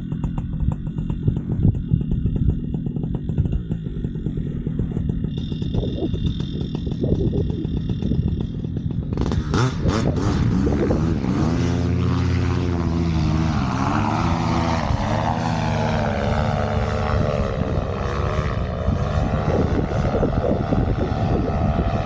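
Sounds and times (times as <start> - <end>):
paramotor engine and propeller: 0.0 - 22.0.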